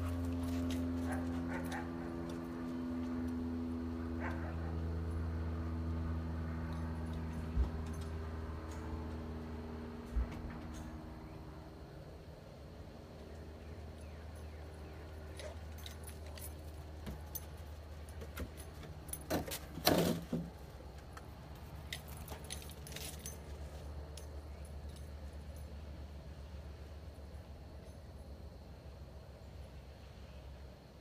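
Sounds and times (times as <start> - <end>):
steady low hum: 0.0 - 31.0
small metal pieces jingling: 21.8 - 23.8.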